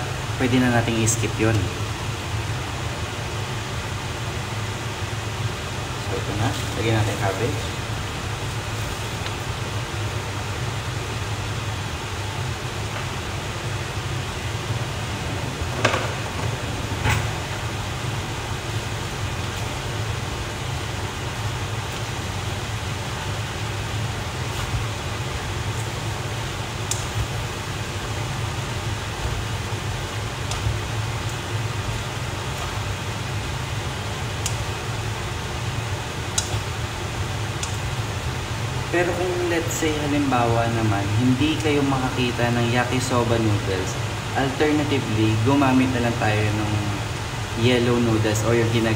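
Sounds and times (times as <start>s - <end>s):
fan-like hum: 0.0s - 48.9s.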